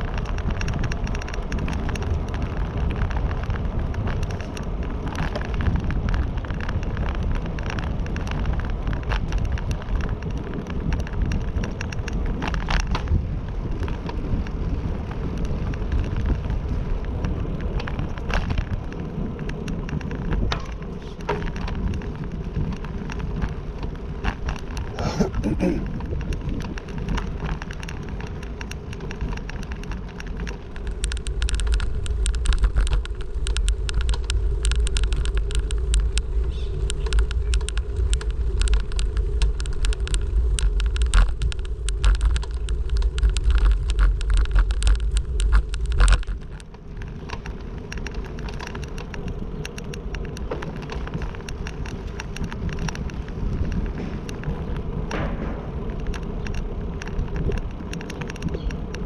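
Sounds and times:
small clicks and rattles: 0.0 - 59.0
vehicle rumble: 0.0 - 59.0.

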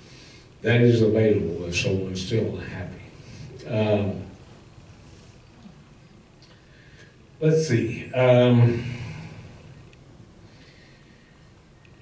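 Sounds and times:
low steady hiss: 0.0 - 12.0
man's voice: 0.6 - 4.4, 7.4 - 9.1.

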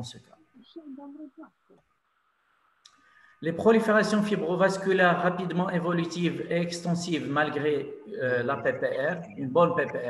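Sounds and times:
faint man's voice: 7.6 - 10.0.

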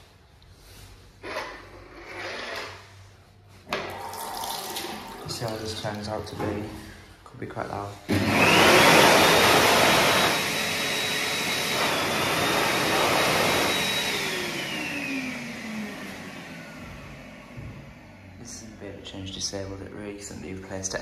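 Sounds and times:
hand dryer air rush and whine: 8.1 - 19.8.

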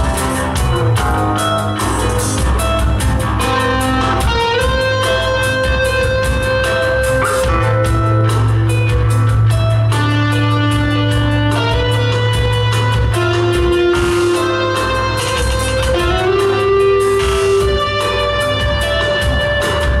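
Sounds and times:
rapid picked notes: 0.0 - 20.0
drum hits: 5.6 - 9.6.

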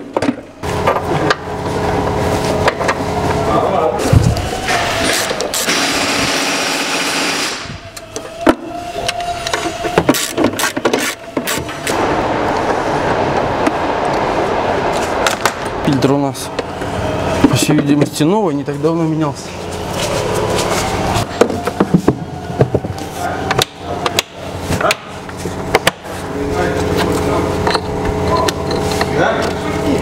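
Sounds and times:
loud steady hiss: 5.6 - 7.6.

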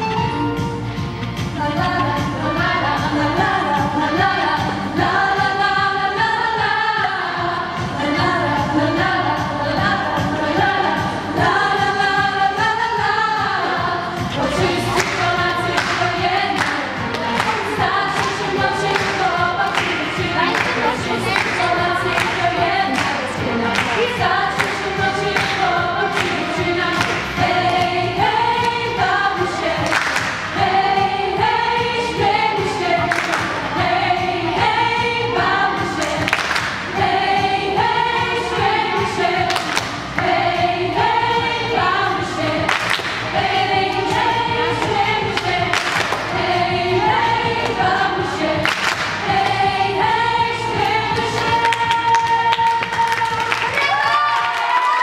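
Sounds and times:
choir singing a cappella: 1.6 - 54.5
steady beat of sharp strokes: 13.5 - 52.4.

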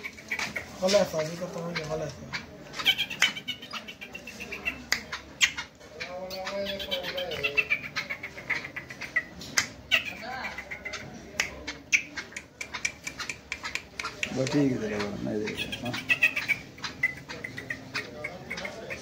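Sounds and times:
francolin calling: 0.0 - 11.1, 11.7 - 19.0
sharp clicks and taps: 11.3 - 14.6.

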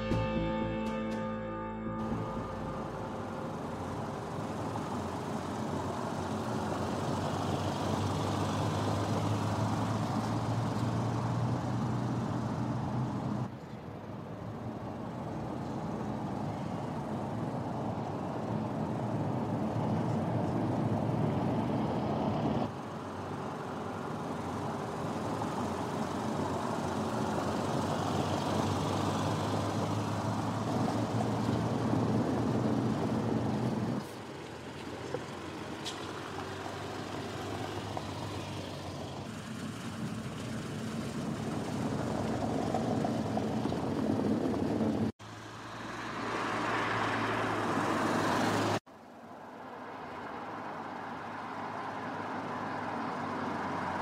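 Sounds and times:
car engine hum: 0.0 - 54.0
tyre noise on paving: 3.5 - 48.8.

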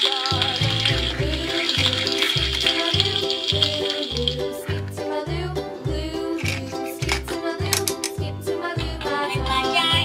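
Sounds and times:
toy stove frying sizzle: 0.0 - 4.7.

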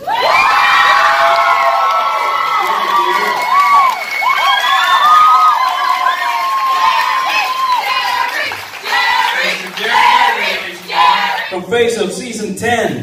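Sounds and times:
audience cheering and whooping: 0.0 - 11.5.

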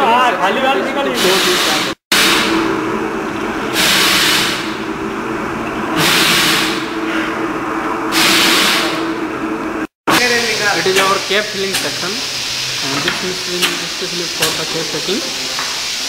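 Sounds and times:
short pneumatic hiss: 1.2 - 2.5, 3.7 - 4.8, 6.0 - 7.3, 8.1 - 9.1, 10.8 - 14.8
bottle-filling machine humming: 1.2 - 16.0.

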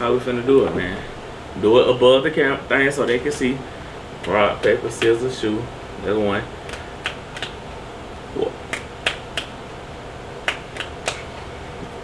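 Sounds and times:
fists slapping into palms: 6.6 - 7.6, 8.6 - 9.6, 10.4 - 11.4.

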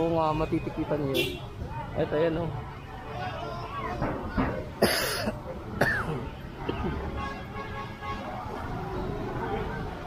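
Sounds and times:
faint voices: 0.0 - 10.0
person coughing: 4.8 - 6.9.

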